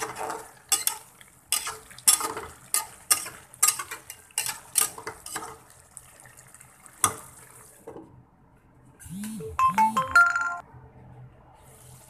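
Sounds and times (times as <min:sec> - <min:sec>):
metal spoon clinking on pot: 0:00.0 - 0:05.5
electronic jingle: 0:09.0 - 0:10.6.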